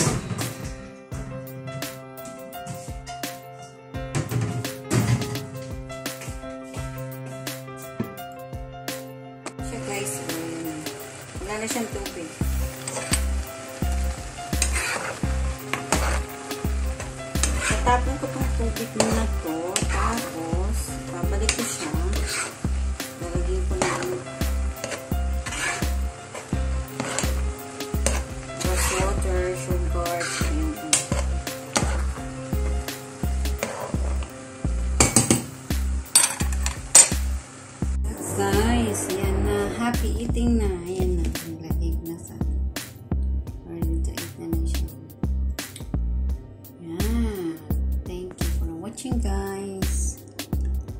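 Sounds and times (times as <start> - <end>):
background music with steady beat: 0.0 - 50.9
noodles cooking in a pan: 9.7 - 38.0
metal tongs clinking on a pan: 36.1 - 37.2.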